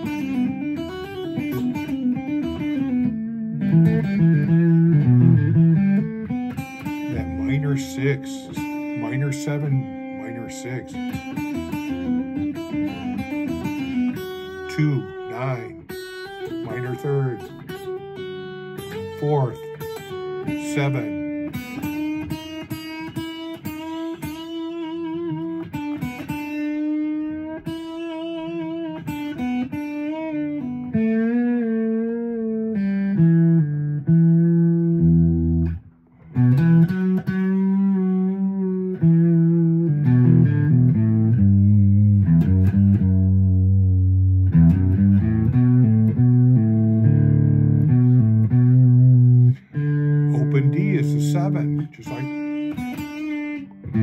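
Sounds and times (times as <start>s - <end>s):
electric guitar blues phrases: 0.0s - 54.0s.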